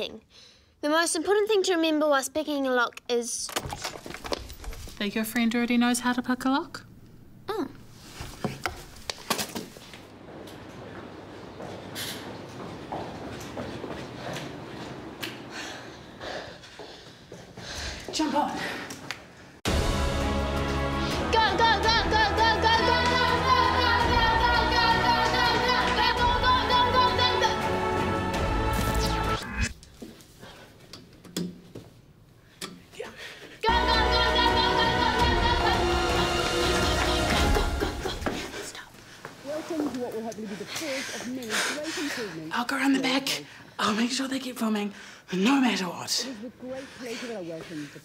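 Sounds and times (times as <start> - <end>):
footsteps and crutch knocking: 8.2 - 19.3, 29.8 - 32.9
background music: 19.7 - 29.7, 33.6 - 38.5.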